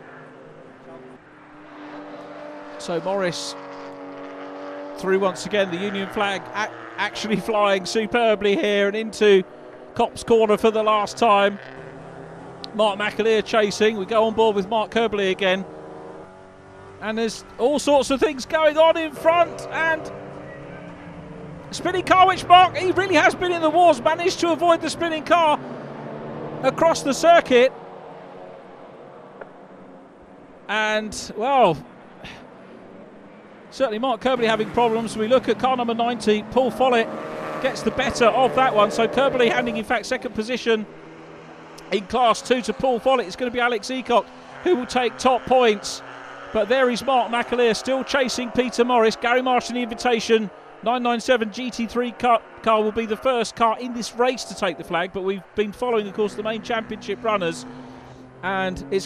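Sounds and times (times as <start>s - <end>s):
race car engines at speed: 0.0s - 59.0s.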